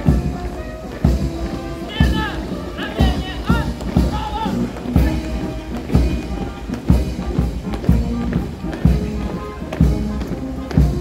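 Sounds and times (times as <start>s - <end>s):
boots marching on paving stones: 0.0s - 11.0s
military march music: 0.0s - 11.0s.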